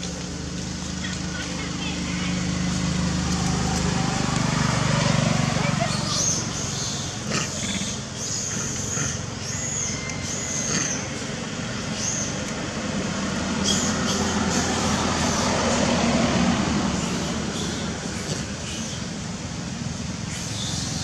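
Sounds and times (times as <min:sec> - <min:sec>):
distant traffic rumble: 0:00.0 - 0:21.0.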